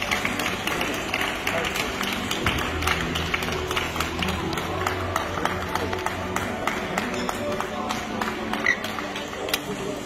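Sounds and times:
music over loudspeakers: 0:00.0 - 0:10.0
sharp taps and claps: 0:00.0 - 0:10.0.

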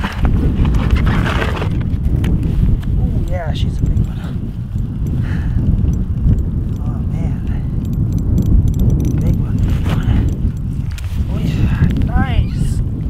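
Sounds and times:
wind buffeting microphone: 0:00.0 - 0:13.0
fishing reel clicking: 0:03.6 - 0:06.9, 0:07.5 - 0:11.1.

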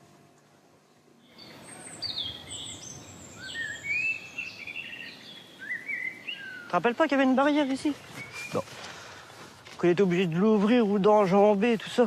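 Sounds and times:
outdoor background noise: 0:00.0 - 0:12.0
birds calling and singing: 0:00.8 - 0:12.0.

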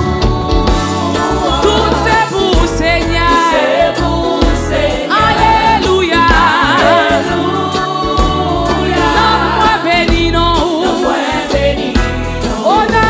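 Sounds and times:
band accompaniment: 0:00.0 - 0:13.0
woman singing gospel song: 0:00.0 - 0:13.0.

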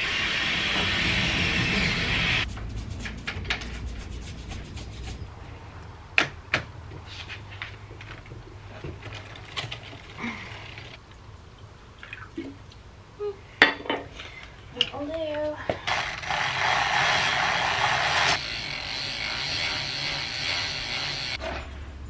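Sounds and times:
loud spray hiss: 0:00.0 - 0:02.7.

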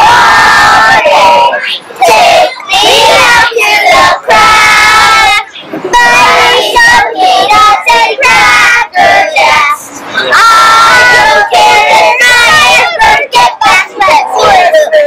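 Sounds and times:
children shouting and chanting: 0:00.0 - 0:15.0.

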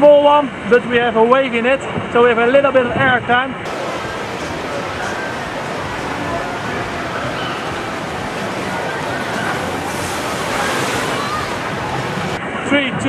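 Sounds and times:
faint voices: 0:03.7 - 0:12.4
water pouring down flume chute: 0:03.7 - 0:12.4
water spraying around boat: 0:03.7 - 0:12.4.

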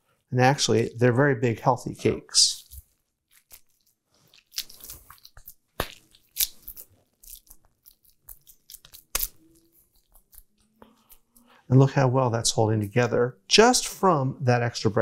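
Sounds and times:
hands squelching wet crab mixture: 0:02.6 - 0:11.6.

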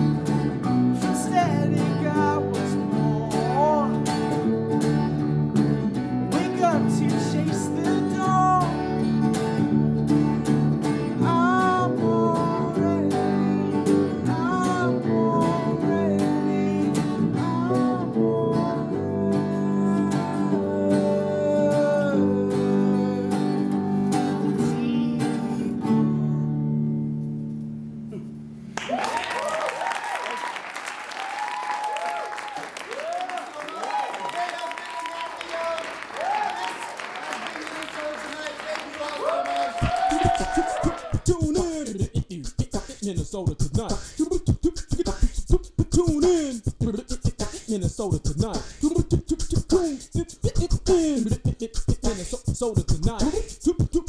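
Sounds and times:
bass guitar: 0:00.0 - 0:28.7, 0:39.8 - 0:54.0
acoustic guitar: 0:00.0 - 0:28.8, 0:39.8 - 0:54.0
man singing: 0:01.0 - 0:04.1, 0:06.2 - 0:09.0, 0:11.1 - 0:23.8, 0:24.4 - 0:26.7, 0:39.7 - 0:54.0
people clapping: 0:28.7 - 0:41.8
lively voices: 0:36.7 - 0:54.0.

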